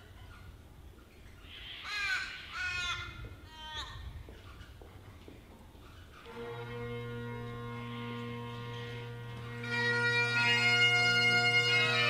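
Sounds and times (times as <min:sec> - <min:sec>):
crow cawing: 0:01.5 - 0:03.2.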